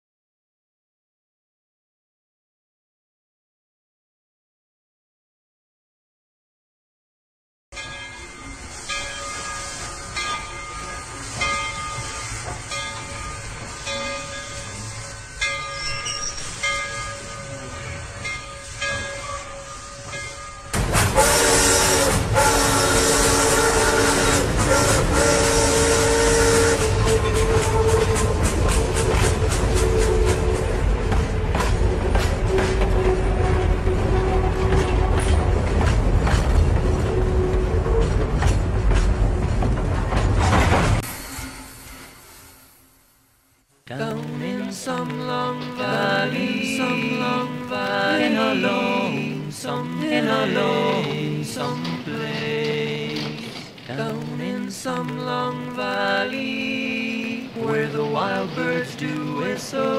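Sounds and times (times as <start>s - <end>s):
train wheels clicking over rail joints: 8.7s - 42.2s
train whistle: 10.9s - 35.6s, 36.8s - 38.6s.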